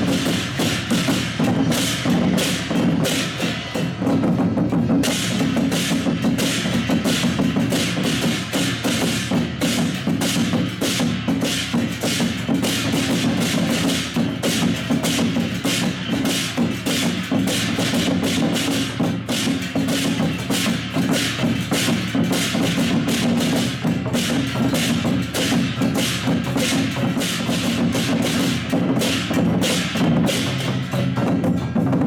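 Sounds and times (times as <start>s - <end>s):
drums beaten in fast rhythm: 0.0s - 32.0s
hand cymbals clashing: 0.0s - 32.0s.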